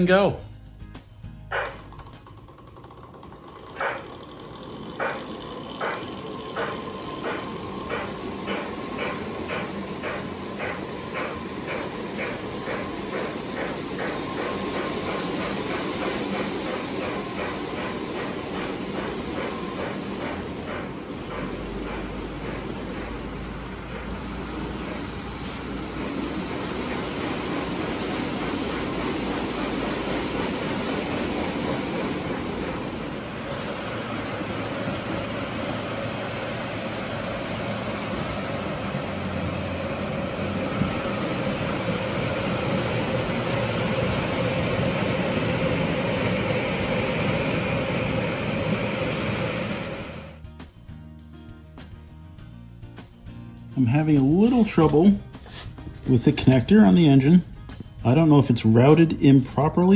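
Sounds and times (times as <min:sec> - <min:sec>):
model train wheels rolling on rails: 0:01.5 - 0:50.4.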